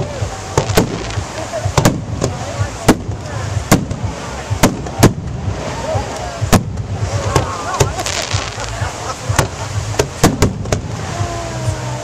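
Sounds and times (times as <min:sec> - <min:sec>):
crowd voices: 0:00.0 - 0:12.0
firework shells bursting: 0:09.4 - 0:10.9.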